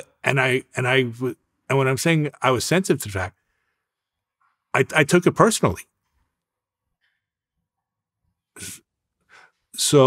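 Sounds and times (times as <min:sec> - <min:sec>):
man sharp breath: 0:09.3 - 0:09.6.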